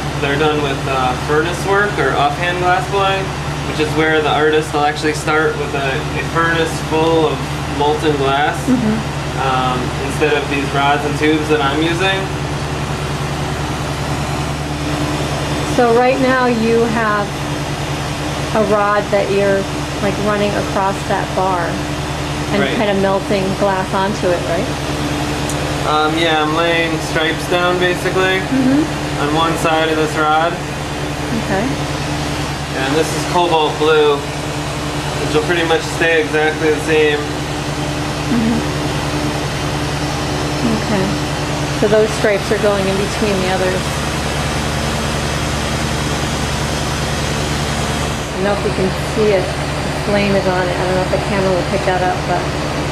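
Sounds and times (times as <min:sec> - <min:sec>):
constant low hum: 0:00.0 - 0:52.9.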